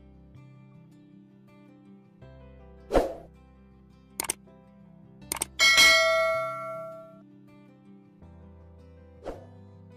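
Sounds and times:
quick clicks: 0:04.2 - 0:04.4, 0:05.3 - 0:05.6
bright bell ding: 0:05.6 - 0:07.2.

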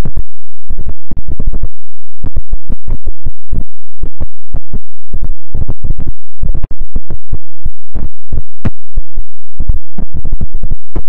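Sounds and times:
distorted bass-heavy stutter bursts: 0:00.0 - 0:11.0
faint steady hum: 0:00.0 - 0:11.0.

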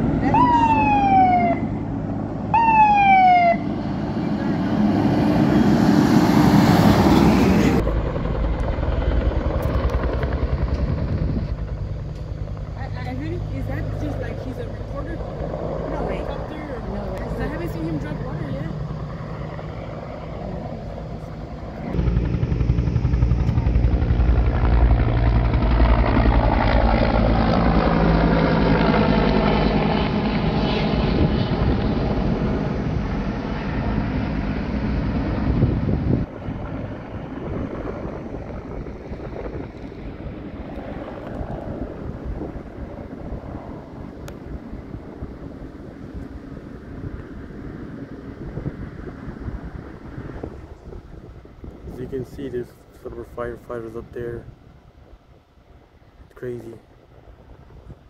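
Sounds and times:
helicopter flying low: 0:00.0 - 0:58.0.

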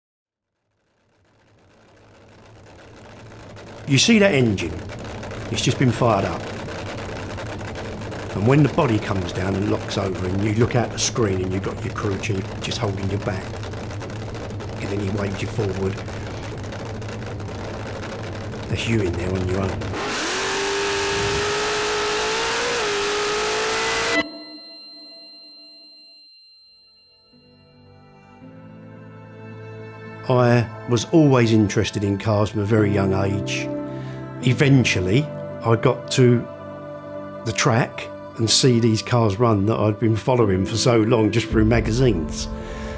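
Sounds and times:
engine idling: 0:00.6 - 0:23.6, 0:41.5 - 0:42.9
thin ringing tone: 0:23.8 - 0:28.4.

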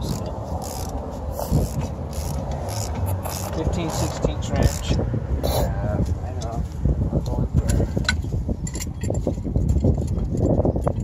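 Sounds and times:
wrench clicking and clinking: 0:00.0 - 0:05.0
steady low rumble: 0:00.0 - 0:11.0.

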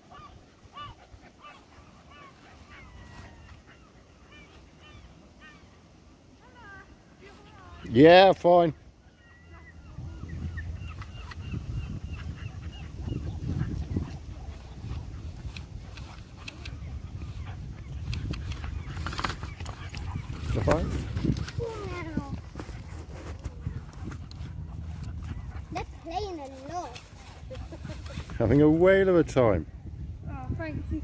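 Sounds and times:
puppies scuffling on grass: 0:00.0 - 0:05.7, 0:06.3 - 0:29.7
puppy yips: 0:00.1 - 0:05.7.

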